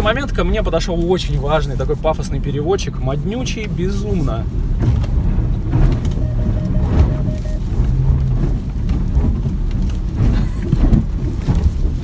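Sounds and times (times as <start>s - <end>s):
road and engine rumble: 0.0s - 12.0s
short steady tone: 6.2s - 7.7s.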